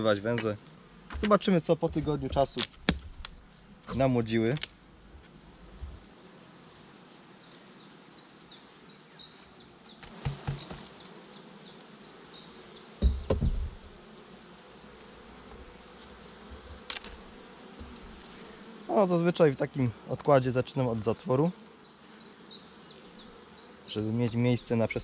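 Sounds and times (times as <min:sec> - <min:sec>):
honeybees buzzing: 0:00.0 - 0:25.0
bird chirping: 0:03.5 - 0:04.1, 0:07.4 - 0:14.6, 0:21.7 - 0:25.0
wooden knocks: 0:10.0 - 0:10.8, 0:13.0 - 0:13.8
thump: 0:10.1 - 0:10.8, 0:13.0 - 0:13.8.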